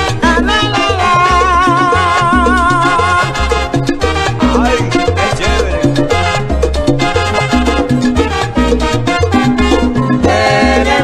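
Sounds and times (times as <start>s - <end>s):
bass repeating low notes: 0.0s - 11.0s
horn lines: 0.0s - 11.0s
latin percussion: 0.0s - 11.0s
piano: 0.0s - 11.0s.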